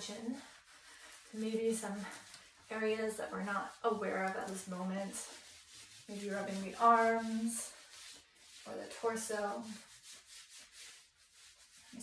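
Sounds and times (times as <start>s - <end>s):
hand rubbing fabric sleeve: 0.0s - 12.0s.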